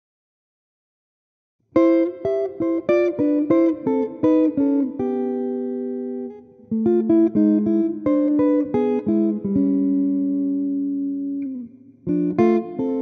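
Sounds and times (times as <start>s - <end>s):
jazz electric guitar chords: 1.8s - 13.0s.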